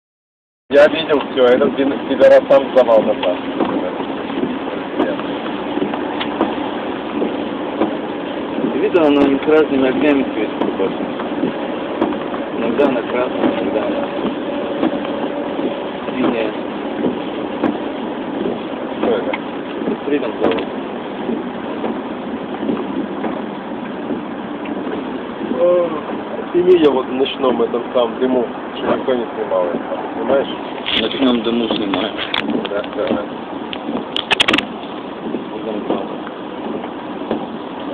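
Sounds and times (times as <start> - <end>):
low engine hum: 0.7 - 37.9
tyres on wet road: 0.7 - 37.9.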